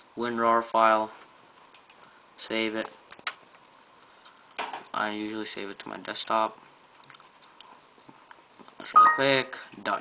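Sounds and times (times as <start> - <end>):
person speaking: 8.8 - 9.7.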